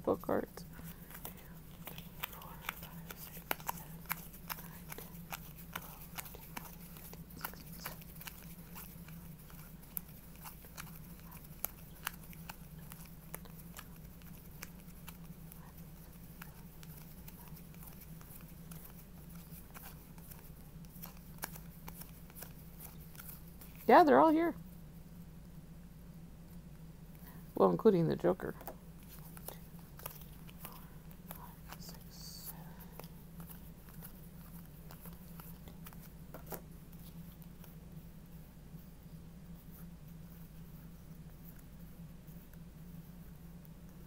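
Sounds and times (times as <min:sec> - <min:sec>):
low steady hum: 0:00.0 - 0:44.0
playing cards clicking: 0:01.1 - 0:15.2, 0:16.8 - 0:23.4, 0:28.6 - 0:31.9.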